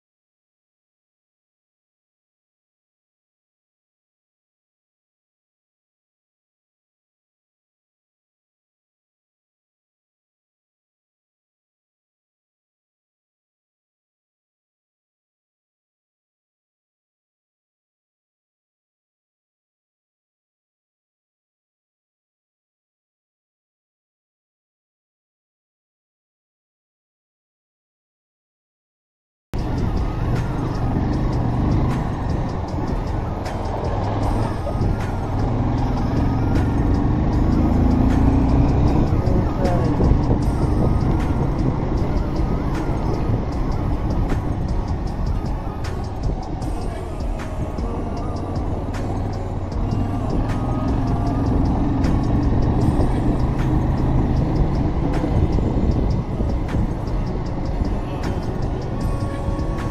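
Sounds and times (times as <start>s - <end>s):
motorcycle engine running: 29.6s - 59.9s
road noise: 29.6s - 59.9s.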